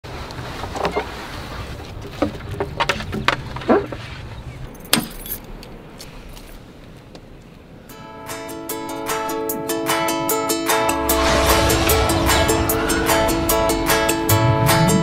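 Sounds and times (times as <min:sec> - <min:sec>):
low rumble: 0:10.8 - 0:15.0.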